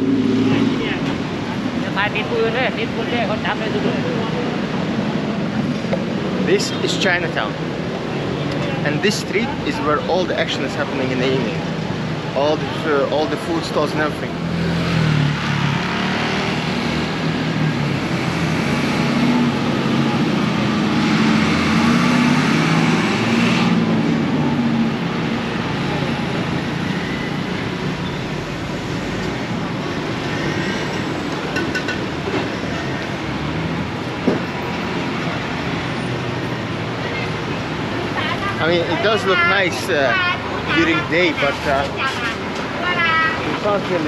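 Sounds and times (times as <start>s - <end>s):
road traffic: 0.0s - 44.0s
nearby vehicle engine drone: 14.0s - 39.5s.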